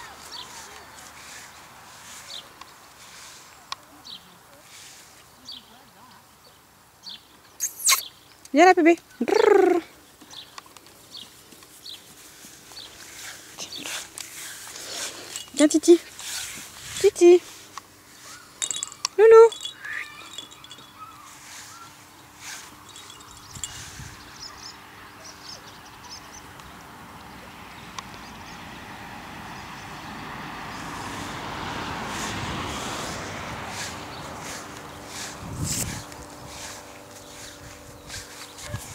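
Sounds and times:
birds chirping: 0.0 - 16.2, 17.0 - 28.8, 33.7 - 38.9
faint bird chirps: 19.6 - 22.0.

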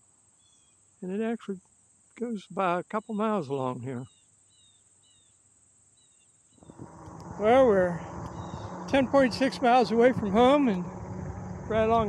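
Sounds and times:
crickets chirping: 0.0 - 12.0
steady high hiss: 0.0 - 12.0
wind and road noise: 6.6 - 12.0.

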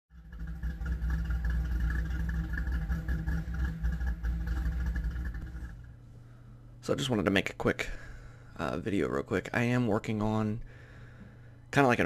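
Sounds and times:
car engine running: 0.1 - 6.3.

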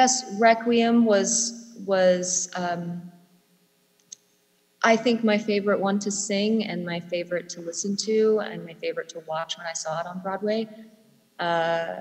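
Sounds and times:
woman talking: 0.0 - 3.0, 4.8 - 10.7, 11.4 - 12.0.

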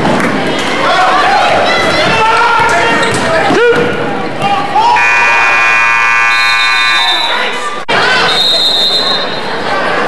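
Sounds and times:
crowd voices and shouts: 0.0 - 10.0
scoreboard buzzer: 5.0 - 7.2.

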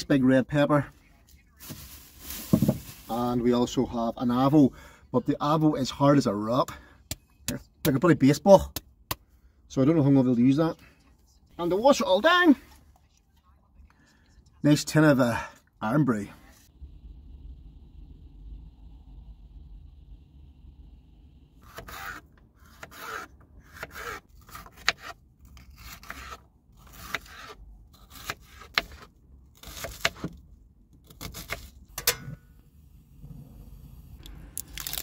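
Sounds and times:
low hum: 16.6 - 21.6.

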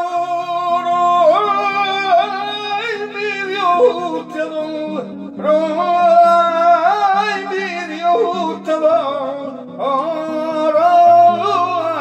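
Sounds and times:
man singing wavering notes: 0.0 - 12.0
strummed acoustic guitar: 0.0 - 12.0.

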